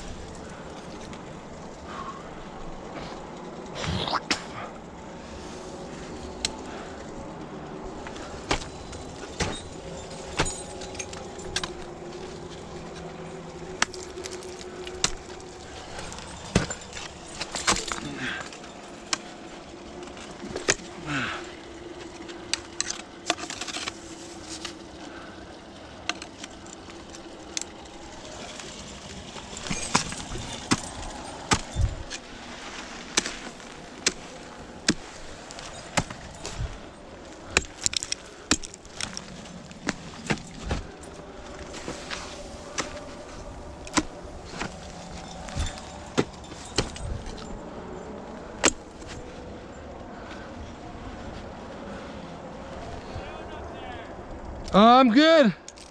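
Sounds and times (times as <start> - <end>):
climbing hardware jangling: 6.1 - 50.0
ice axe striking ice: 8.1 - 12.3, 13.7 - 19.3, 28.3 - 36.8, 37.4 - 41.0, 41.6 - 47.5, 48.6 - 49.2.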